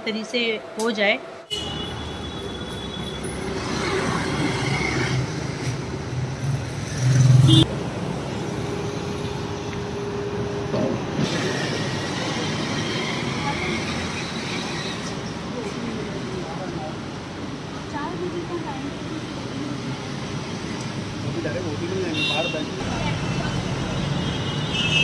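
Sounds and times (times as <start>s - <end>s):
city street traffic: 0.0s - 25.0s.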